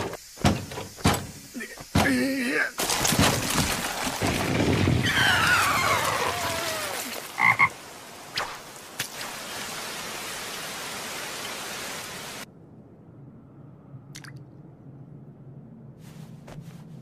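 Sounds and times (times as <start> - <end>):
rain patter: 1.4 - 12.5
cartoon toad croaking: 7.4 - 7.8.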